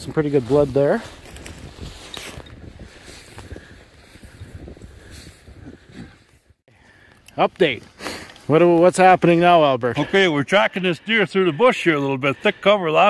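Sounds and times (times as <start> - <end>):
footsteps in snow: 0.0 - 6.6
wind rumbling on microphone: 0.0 - 6.6.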